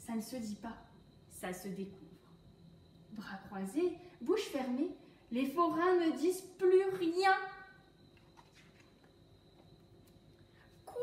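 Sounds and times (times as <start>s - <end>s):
paper page turning: 8.2s - 9.0s.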